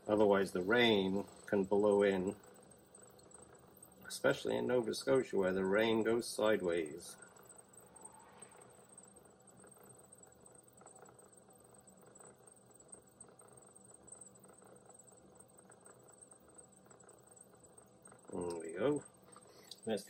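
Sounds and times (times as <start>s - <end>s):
potter's wheel hum: 0.0s - 20.0s.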